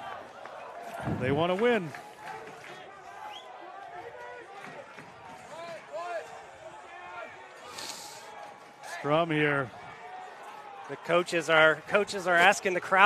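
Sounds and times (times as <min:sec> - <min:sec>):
brief hiss: 0:07.7 - 0:08.3.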